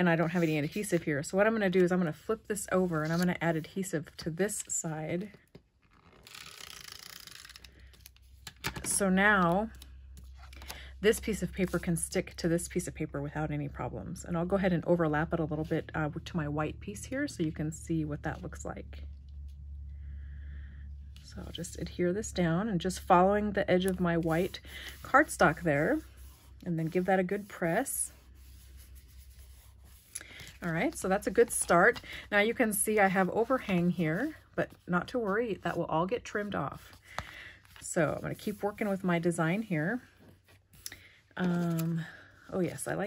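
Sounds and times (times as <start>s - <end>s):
fingertips rubbing paper: 24.2s - 34.4s.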